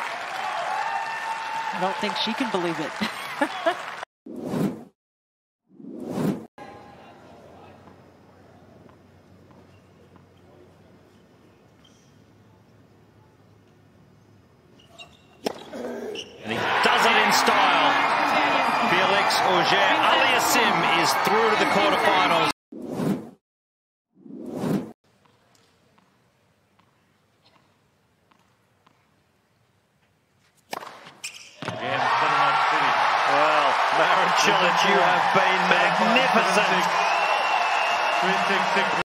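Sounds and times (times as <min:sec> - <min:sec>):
crowd cheering and shouting: 0:00.0 - 0:02.7, 0:16.4 - 0:22.5, 0:31.7 - 0:39.0.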